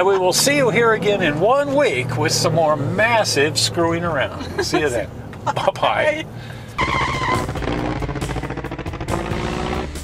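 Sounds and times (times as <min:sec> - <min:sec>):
engine-like buzz: 0:06.8 - 0:10.0.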